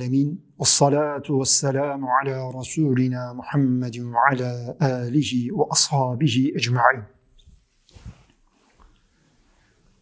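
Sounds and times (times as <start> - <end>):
faint brief soft sounds: 7.4 - 10.0.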